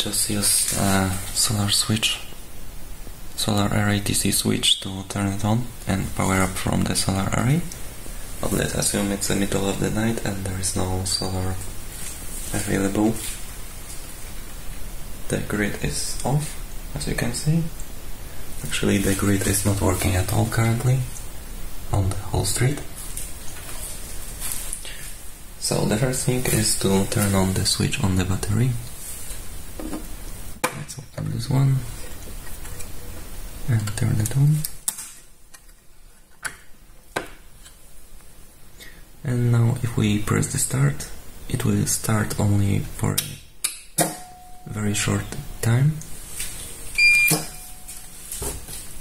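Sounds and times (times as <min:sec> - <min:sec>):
person speaking: 0:00.0 - 0:02.5, 0:03.3 - 0:14.2, 0:15.2 - 0:23.8, 0:24.6 - 0:29.0, 0:30.6 - 0:34.8, 0:44.5 - 0:49.0
steady background hiss: 0:00.0 - 0:49.0.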